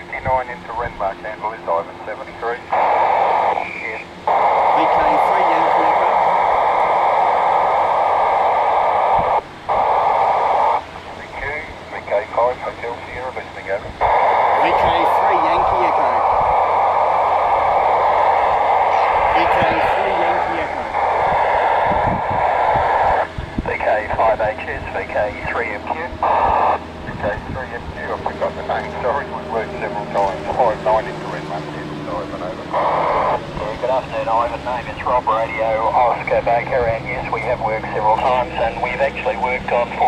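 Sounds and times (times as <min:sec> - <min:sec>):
broken fragments of voices: 0:00.0 - 0:40.0
radio receiver hiss: 0:00.0 - 0:40.0.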